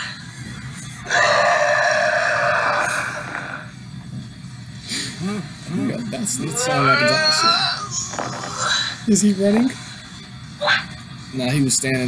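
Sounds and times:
cartoon monster yell: 6.5 - 7.9.

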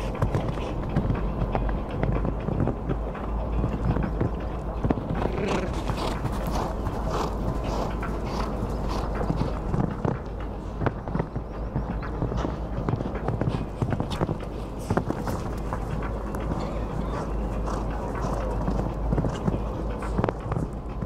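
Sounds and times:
horse hoofbeats on sand: 0.0 - 21.0.

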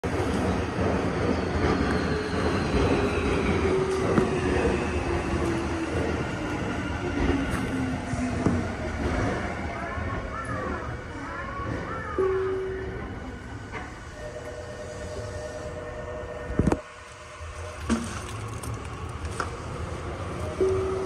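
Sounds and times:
electric train running rumble: 0.0 - 21.0.

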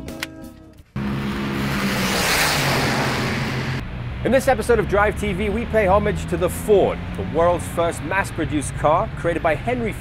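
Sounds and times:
car speeding past: 1.0 - 7.8.

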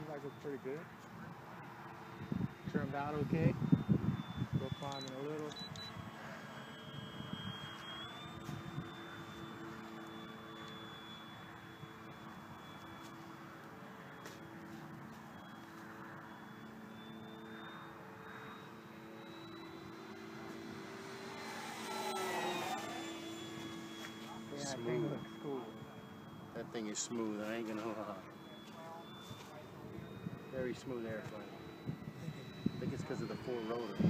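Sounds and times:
propeller hum with motor whine: 0.0 - 34.0.

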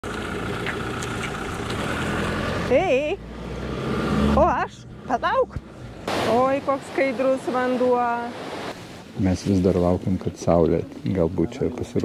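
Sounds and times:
engine idling: 0.0 - 3.2.

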